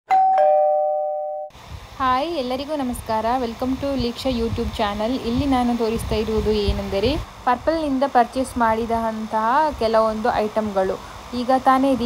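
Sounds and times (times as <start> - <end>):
two-note doorbell chime: 0.1 - 1.5.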